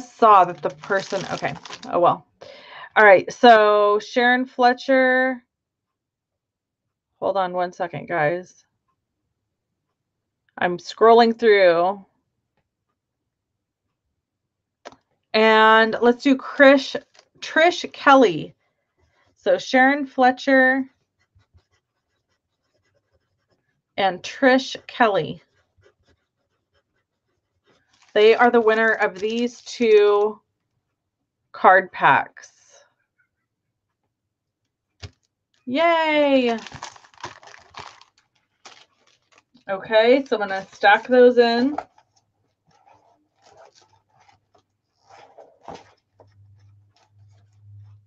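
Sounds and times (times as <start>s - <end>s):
packages rustling and scraping: 0.0s - 2.1s, 17.0s - 17.4s, 27.7s - 30.3s, 36.3s - 48.0s
pencil scratching on paper: 18.0s - 30.2s, 39.9s - 48.0s.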